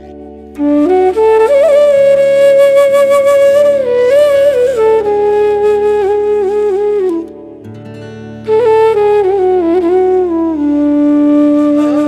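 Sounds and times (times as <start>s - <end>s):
flute melody: 0.0s - 12.0s
low steady accompaniment: 0.0s - 12.0s.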